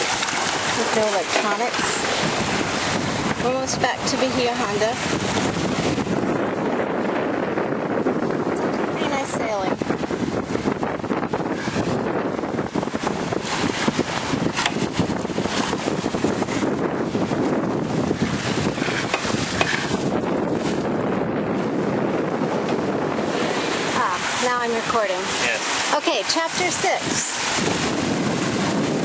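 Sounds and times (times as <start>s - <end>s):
water rushing along hull: 0.0s - 29.0s
wind buffeting microphone: 0.0s - 29.0s.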